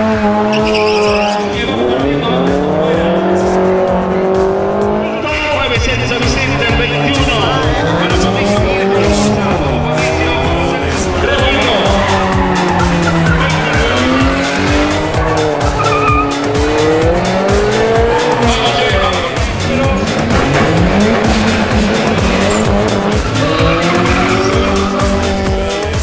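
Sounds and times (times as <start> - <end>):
racing car engines revving: 0.0 - 26.0
tyre squeal: 0.5 - 1.5, 15.7 - 16.5
electronic dance music: 0.7 - 26.0.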